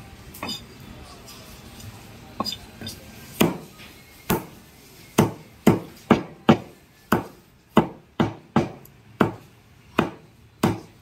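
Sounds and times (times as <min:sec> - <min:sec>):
cleaver chopping on wooden block: 0:03.4 - 0:03.7, 0:05.2 - 0:11.0.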